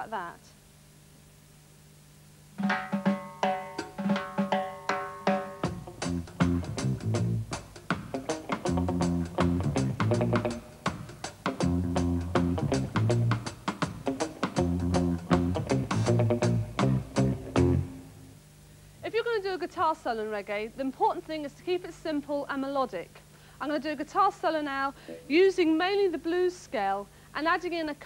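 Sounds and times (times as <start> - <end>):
palm-muted electric guitar riff: 2.6 - 18.2
bass guitar riff: 5.6 - 10.7, 11.5 - 18.1.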